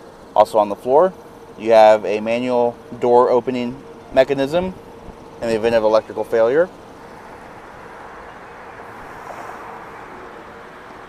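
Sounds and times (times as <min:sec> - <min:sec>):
background hum and hiss: 0:00.0 - 0:11.0
faint constant tone: 0:00.0 - 0:11.0.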